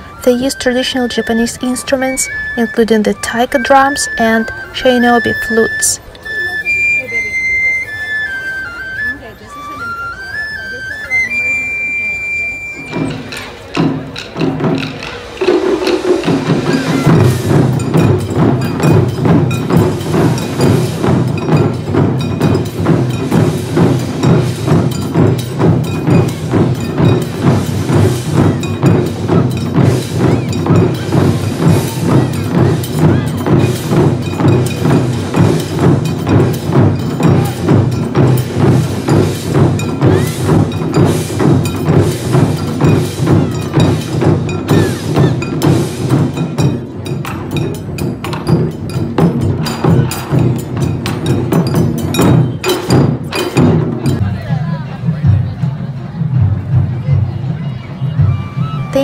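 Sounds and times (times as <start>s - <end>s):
deep taiko drum strikes: 13.1s - 57.1s.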